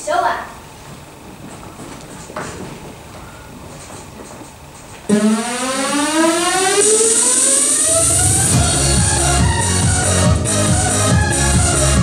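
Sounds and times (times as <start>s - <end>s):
electronic dance music: 5.1s - 12.0s
synthesized riser: 5.1s - 12.0s.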